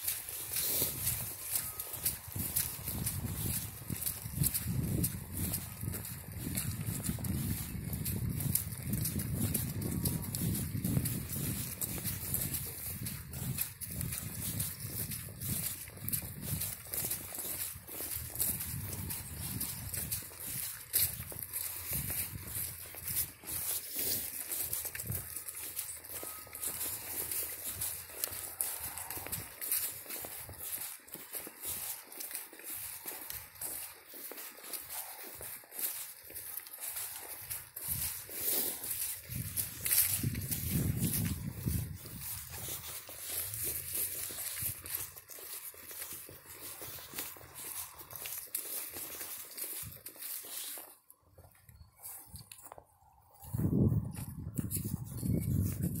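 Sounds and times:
footsteps through dry leaves: 0:00.0 - 0:56.0.

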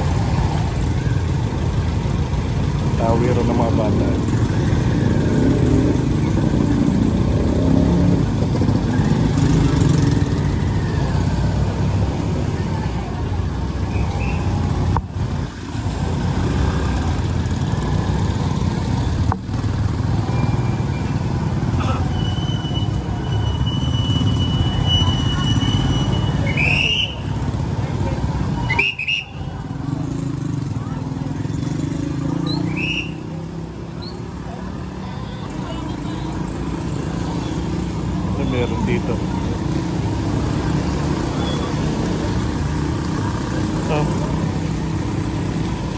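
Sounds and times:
motorcycle engines and traffic rumble: 0:00.0 - 0:45.9.

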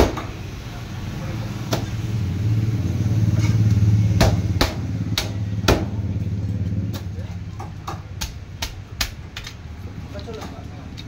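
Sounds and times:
low engine hum: 0:00.3 - 0:11.0.

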